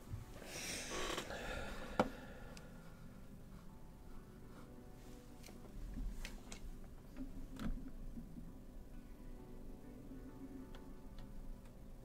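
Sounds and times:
man exhaling heavily: 0:00.4 - 0:02.5.

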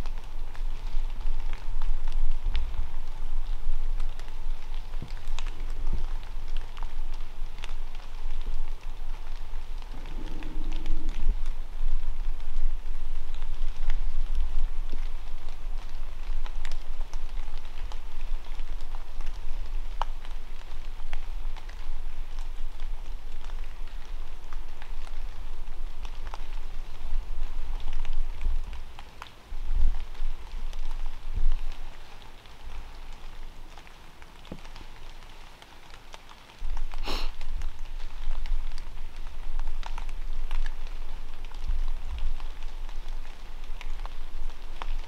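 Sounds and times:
low rumble: 0:00.0 - 0:29.0
steady hiss: 0:00.0 - 0:45.0
water drops on dry leaves: 0:00.0 - 0:45.0.

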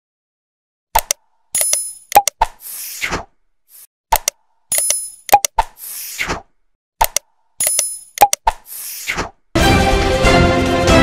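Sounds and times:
mouse clicks: 0:01.0 - 0:02.6, 0:04.1 - 0:05.8, 0:07.0 - 0:08.8.

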